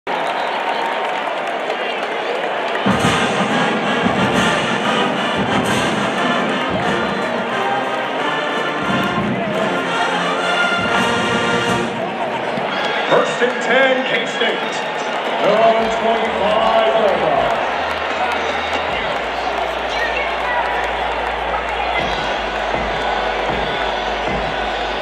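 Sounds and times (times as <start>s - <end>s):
deep bass beat: 20.8s - 25.0s.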